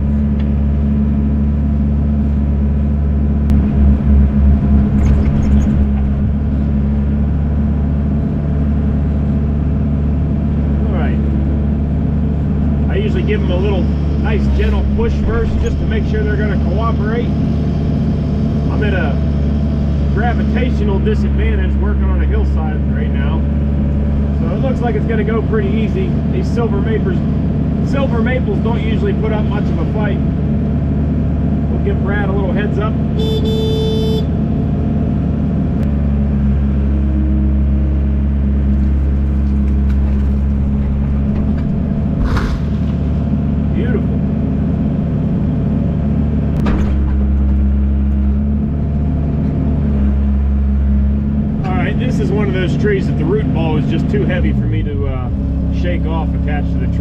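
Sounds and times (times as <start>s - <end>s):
diesel excavator engine running: 0.0s - 57.0s
short beep: 33.2s - 34.3s
sharp knocks: 38.9s - 43.2s.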